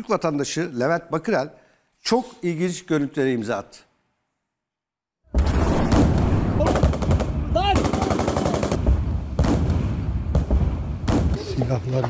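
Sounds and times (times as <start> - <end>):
rapid automatic gunfire: 6.7 - 8.8.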